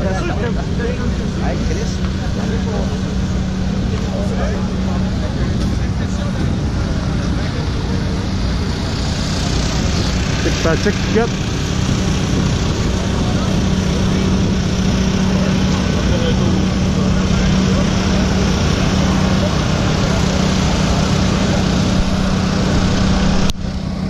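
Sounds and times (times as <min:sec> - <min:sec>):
engine running steadily: 0:00.0 - 0:24.0
voices in background: 0:00.0 - 0:24.0.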